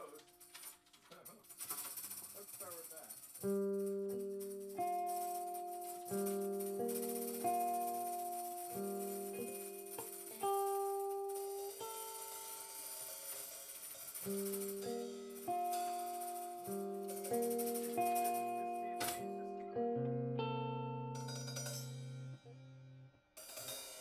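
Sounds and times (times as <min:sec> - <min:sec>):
high jingling percussion: 0:00.0 - 0:19.4, 0:21.1 - 0:22.4
electric guitar chords: 0:03.5 - 0:12.9, 0:14.3 - 0:23.9.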